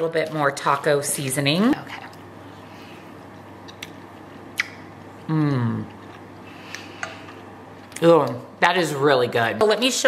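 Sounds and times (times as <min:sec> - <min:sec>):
quiet chewing: 0:01.9 - 0:08.4
soft mouth clicks: 0:04.5 - 0:04.8.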